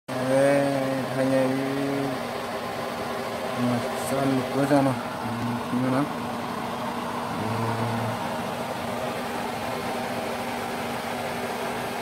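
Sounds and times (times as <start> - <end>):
man drawing out long syllables: 7.3 - 8.4.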